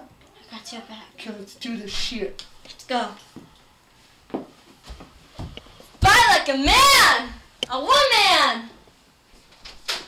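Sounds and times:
footsteps on carpeted stairs: 4.3s - 7.6s.

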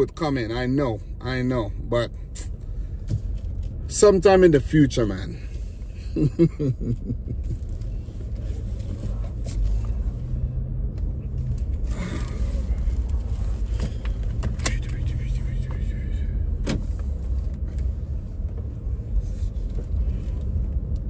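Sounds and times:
car engine rumble from inside: 0.0s - 21.0s.

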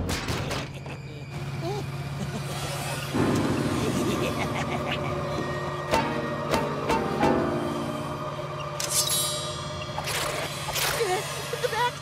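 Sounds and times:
car driving drone: 0.4s - 12.0s.

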